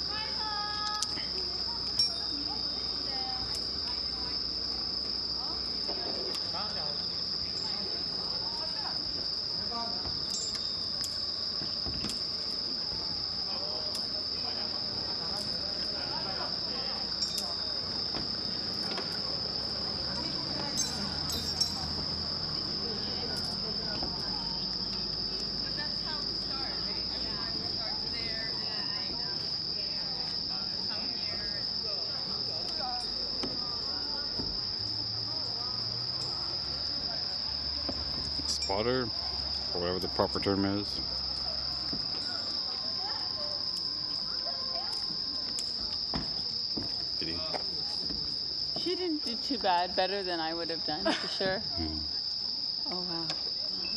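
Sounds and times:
night insects chirping: 0.0s - 53.9s.

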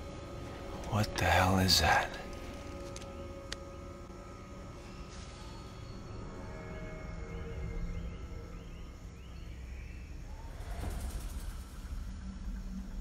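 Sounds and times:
jungle ambience: 0.0s - 13.0s
low droning score music: 0.0s - 13.0s.

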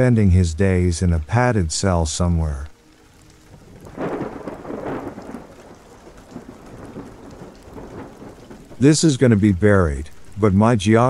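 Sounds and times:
rain falling: 0.0s - 11.0s
thunder rolling: 3.5s - 11.0s.

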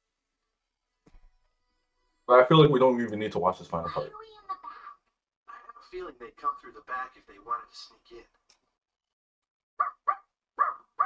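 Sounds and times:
small dog yapping: 9.8s - 11.0s.

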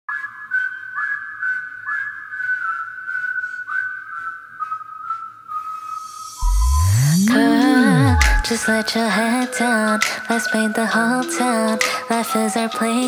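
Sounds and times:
whistled melody: 0.1s - 13.0s.

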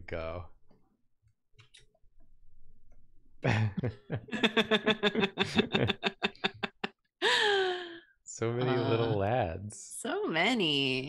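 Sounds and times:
person laughing: 3.5s - 7.9s, 8.6s - 9.4s.

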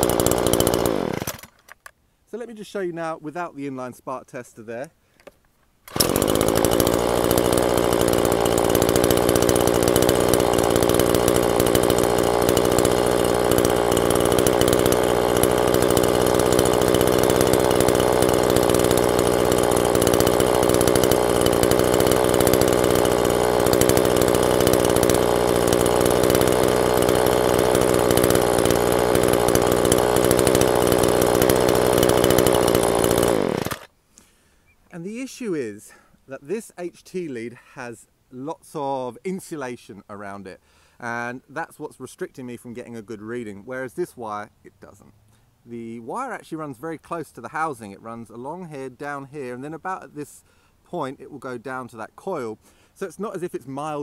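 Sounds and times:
string trimmer engine running: 0.0s - 1.7s, 5.9s - 34.3s.

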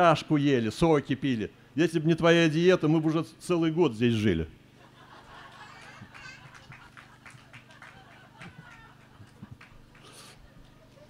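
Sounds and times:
audience laughter: 4.8s - 11.0s.

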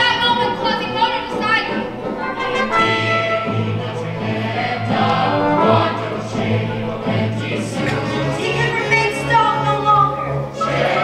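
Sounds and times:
orchestral accompaniment: 0.0s - 11.0s
choir singing held notes: 2.2s - 9.7s, 10.3s - 11.0s.

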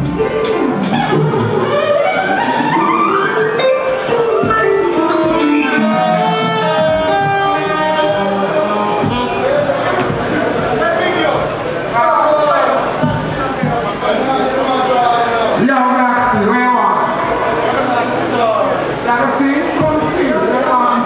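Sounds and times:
live reggae band: 0.0s - 21.0s.

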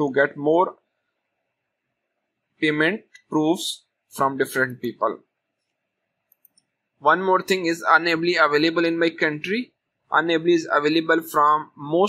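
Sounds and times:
person speaking: 0.0s - 1.0s, 2.5s - 12.0s
faint computer mouse clicks: 5.6s - 6.8s.

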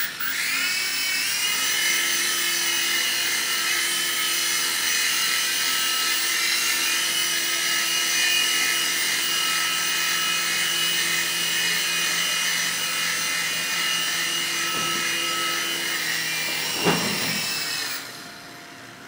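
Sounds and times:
toy helicopter motor whine: 0.0s - 18.6s.

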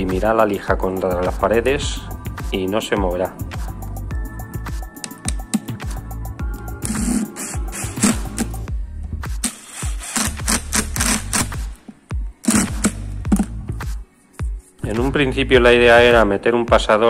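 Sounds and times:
background music: 0.0s - 17.0s
impact driver hammering screws: 6.9s - 8.5s, 9.4s - 11.5s, 12.5s - 13.0s.

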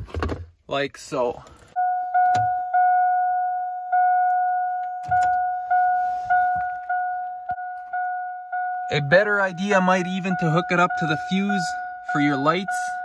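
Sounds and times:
car warning chime dinging: 1.6s - 13.0s.

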